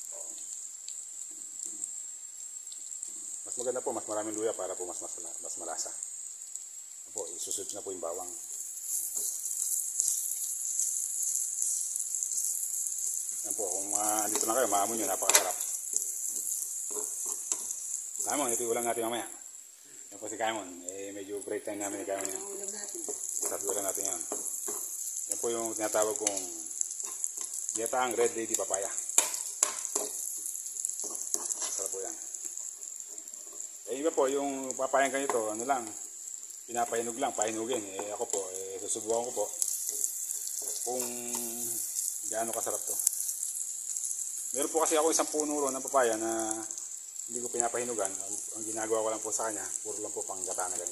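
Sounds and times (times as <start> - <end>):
food sizzling in hot oil: 0.0 - 50.9
spoon stirring in skillet: 8.3 - 19.1, 21.8 - 50.9
metal spatula scraping pan: 31.0 - 31.9.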